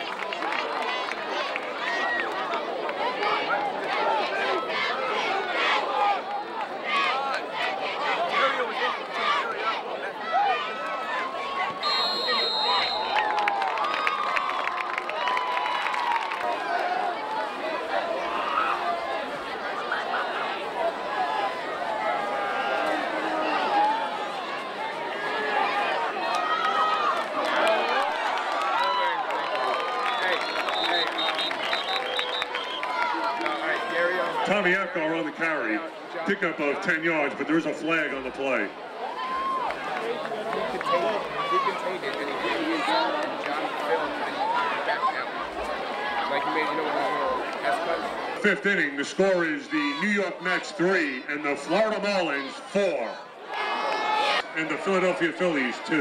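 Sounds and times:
crowd chatter: 0.0 - 56.0.

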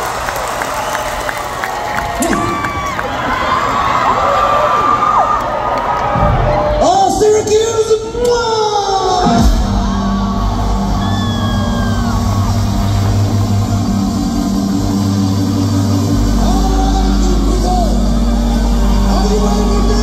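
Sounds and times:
crowd whooping: 0.0 - 7.2, 8.9 - 20.0
deep bass note: 9.3 - 20.0.

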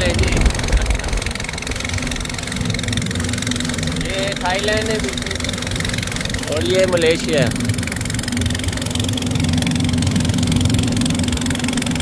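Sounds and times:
person speaking: 0.0 - 1.2
boat engine droning: 0.0 - 12.0.

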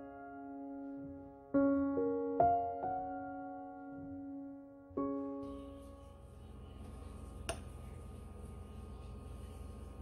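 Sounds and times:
faint low hum: 3.5 - 10.0.

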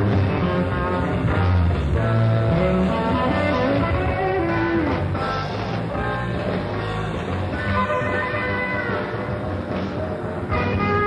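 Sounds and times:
live rock band playing: 0.0 - 11.0
sliding lead guitar notes: 0.0 - 11.0.

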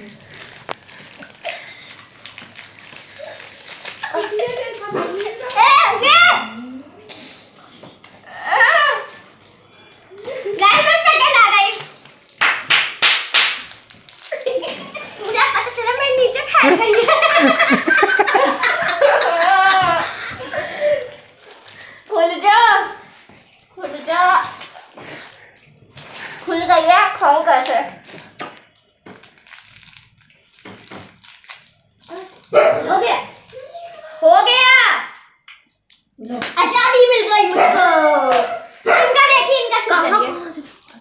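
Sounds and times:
plastic wrapper crinkling: 0.0 - 5.6, 8.7 - 19.0, 20.4 - 33.9, 38.2 - 41.0
girls talking excitedly: 4.0 - 6.7, 10.3 - 11.9, 15.0 - 17.6, 18.4 - 20.4, 22.1 - 23.0, 23.8 - 24.6, 34.1 - 35.2, 36.2 - 40.8
hand claps: 12.4 - 13.7.

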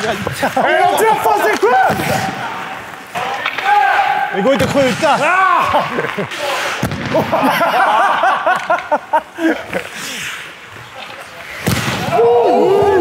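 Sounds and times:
players shouting: 0.0 - 8.5, 11.9 - 13.0
hockey stick hitting ball: 1.4 - 3.9.

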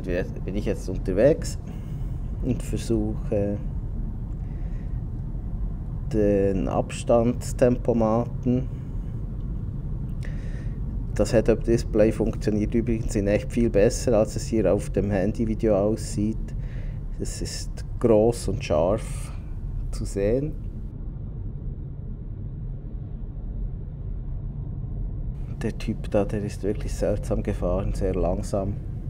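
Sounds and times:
road and tyre noise in car: 0.0 - 29.0.

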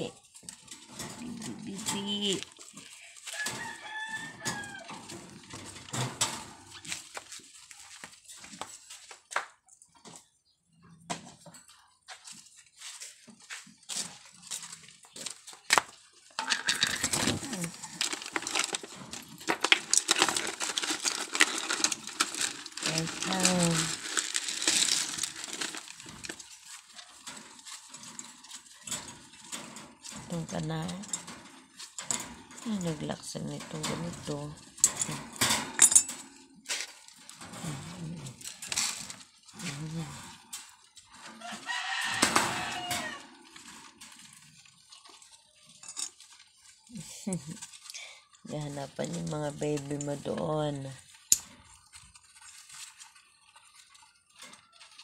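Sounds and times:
wire cage clicking and rattling: 0.0 - 8.8, 14.0 - 55.0.

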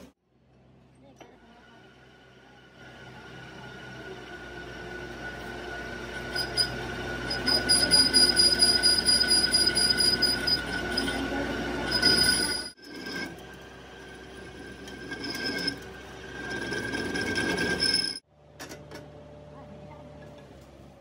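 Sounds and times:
machine hum: 1.2 - 21.0
lathe tool squealing: 4.2 - 18.2.

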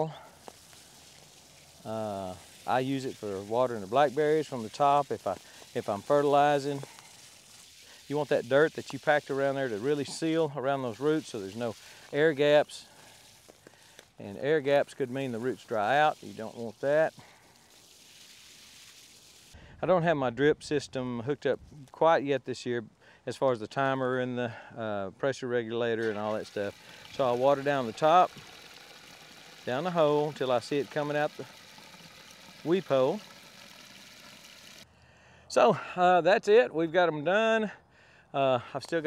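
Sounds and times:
water spray hissing onto soil: 0.0 - 19.6, 26.0 - 34.8.

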